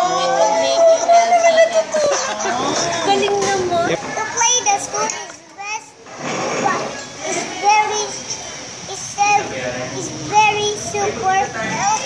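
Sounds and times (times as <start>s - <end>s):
laughter: 1.7s - 3.0s
young child's voice: 2.8s - 12.0s.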